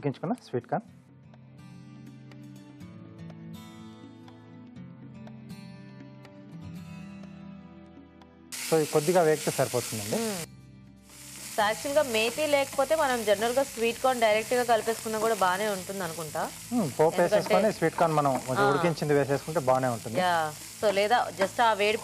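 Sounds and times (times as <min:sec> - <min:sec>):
vegetables sizzling in oil: 0:08.5 - 0:22.0.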